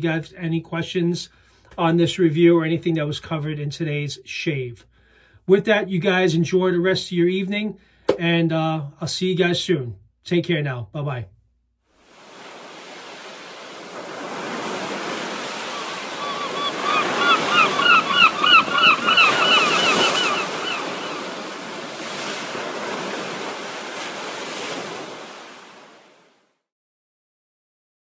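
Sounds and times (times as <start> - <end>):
ocean surf washing: 12.0 - 26.5
quick repeated bird calls: 15.3 - 21.4.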